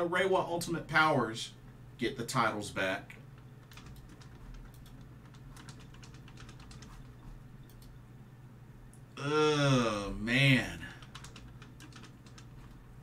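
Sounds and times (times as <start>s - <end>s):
low steady hum: 0.0s - 13.0s
computer keyboard typing: 3.4s - 8.0s, 11.0s - 12.9s.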